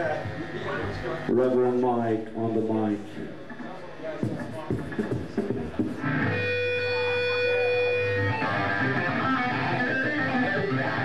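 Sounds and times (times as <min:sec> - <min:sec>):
live rock band playing: 0:05.8 - 0:11.0
electric guitar chord ringing: 0:06.0 - 0:11.0.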